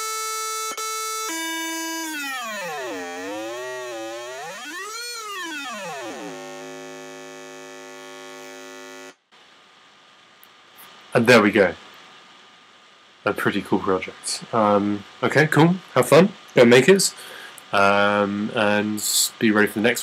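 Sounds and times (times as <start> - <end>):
buzzy synthesized oscillator tone: 1.2 - 9.1.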